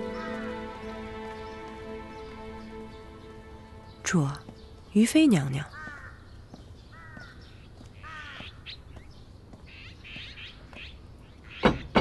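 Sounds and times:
bird calling: 4.0s - 11.9s.

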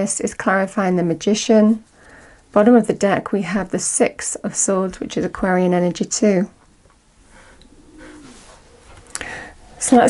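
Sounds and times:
dove cooing faintly: 7.2s - 10.0s.

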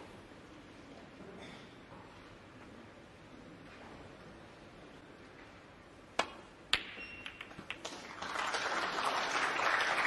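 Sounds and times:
audience applause: 7.8s - 10.0s.

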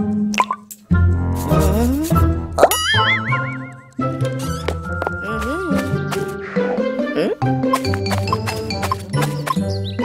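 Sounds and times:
water-drop plop: 0.3s - 0.7s
children's background music: 0.9s - 10.0s.

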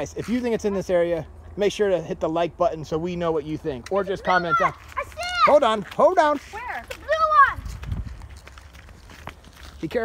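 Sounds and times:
footsteps through leaf litter: 4.6s - 10.0s.

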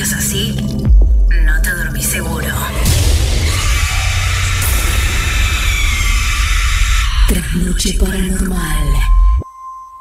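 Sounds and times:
noisy burst with deep rumble: 2.7s - 9.4s.

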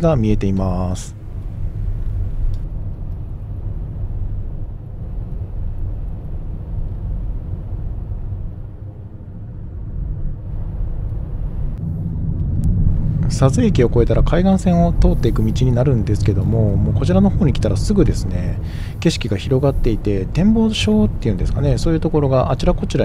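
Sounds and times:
car cabin road rumble: 0.0s - 23.0s.

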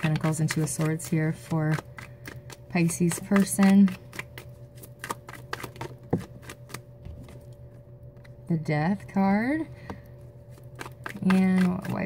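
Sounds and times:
cards being shuffled by hand: 0.0s - 7.6s, 10.5s - 12.0s.

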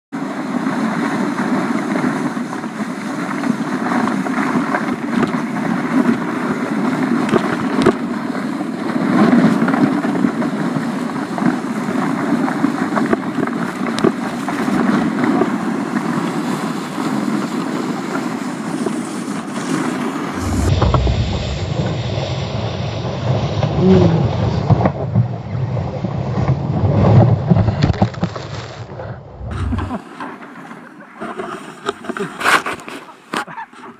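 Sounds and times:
wind on microphone: 0.2s - 30.0s
sled hissing over snow: 15.7s - 24.6s
deep muffled rumble: 20.3s - 30.0s.

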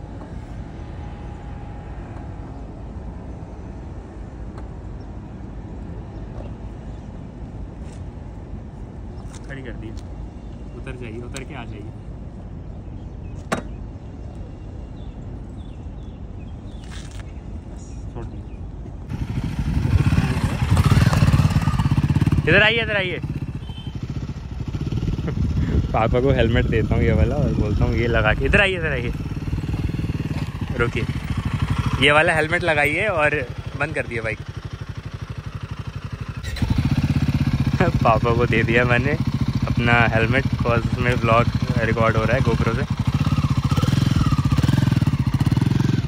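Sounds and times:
motorcycle engine idling: 19.1s - 46.0s.

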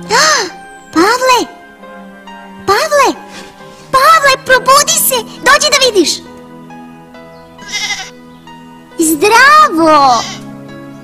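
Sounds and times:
soft background music: 0.0s - 11.0s
lamb bleating: 7.6s - 8.2s, 10.0s - 10.5s.

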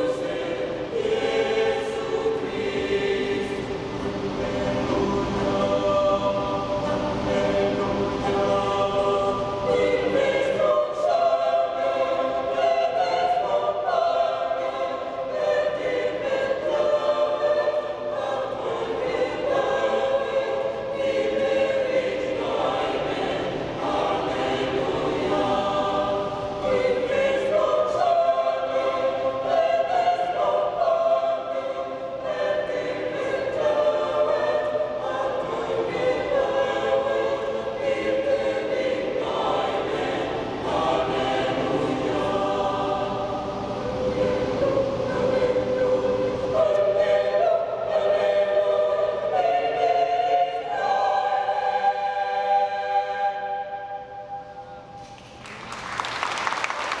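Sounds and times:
mixed choir singing: 0.0s - 57.0s.

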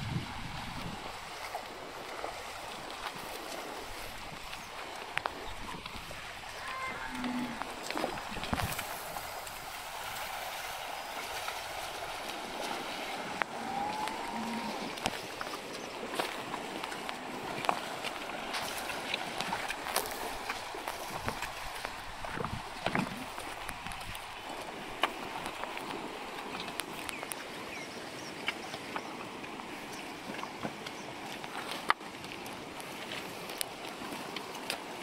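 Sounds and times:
hooves splashing in water: 0.0s - 35.0s
river water over stones: 0.0s - 35.0s
hooves knocking on rocks: 2.9s - 10.6s, 14.9s - 27.4s.

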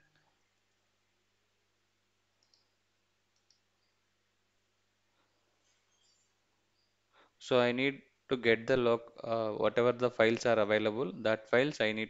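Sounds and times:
faint steady hum: 0.0s - 12.0s
computer mouse clicks: 2.4s - 4.0s.

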